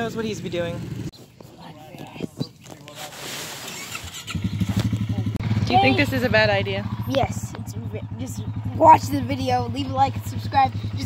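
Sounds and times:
atv engine idling: 0:00.0 - 0:01.1, 0:03.7 - 0:11.0.

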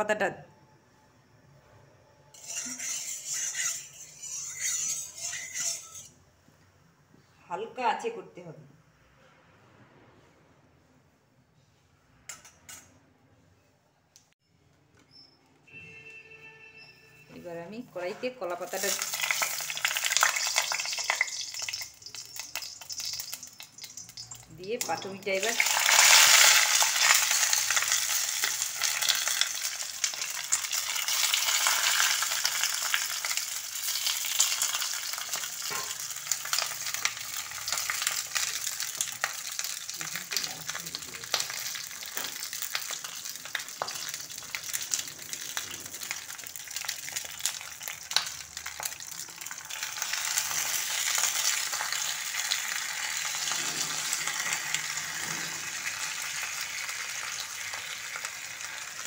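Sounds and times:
food sizzling and crackling in a pan: 0:02.4 - 0:06.1, 0:18.5 - 0:59.0.

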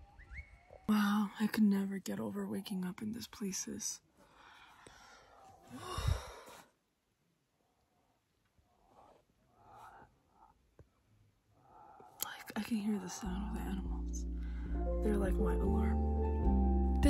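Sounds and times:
woman sighing: 0:05.7 - 0:06.6.

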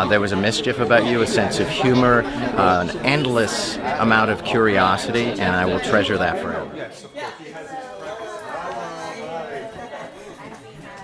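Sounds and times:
indistinct chatter of people: 0:00.0 - 0:11.0.

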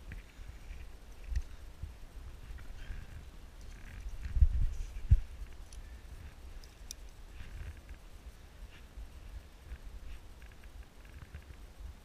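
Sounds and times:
rumbling and thumps on microphone: 0:01.8 - 0:05.6.

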